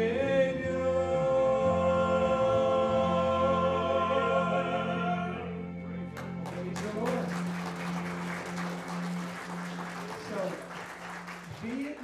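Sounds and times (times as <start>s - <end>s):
congregation singing: 0.6s - 5.7s
congregation applauding: 6.1s - 12.0s.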